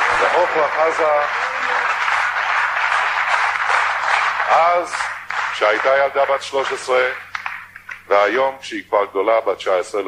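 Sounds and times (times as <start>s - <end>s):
audience applauding: 0.0s - 8.1s
faint mains hum: 0.0s - 10.0s.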